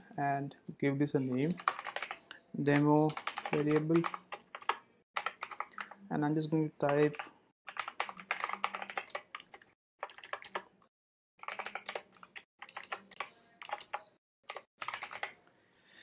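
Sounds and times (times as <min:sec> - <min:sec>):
typing on computer keyboard: 0:01.4 - 0:06.0, 0:06.8 - 0:10.7, 0:11.4 - 0:15.4.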